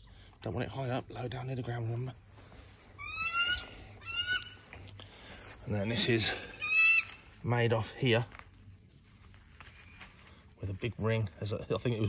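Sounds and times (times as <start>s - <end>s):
bird of prey yelping: 3.0s - 4.6s, 6.5s - 7.3s.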